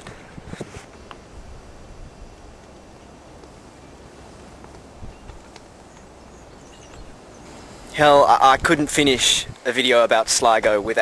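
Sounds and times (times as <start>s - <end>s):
steady open-air hiss: 0.0s - 11.0s.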